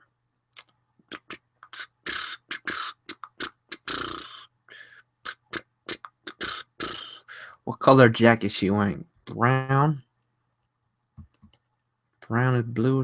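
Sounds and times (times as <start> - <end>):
person beatboxing: 1.1 - 7.4.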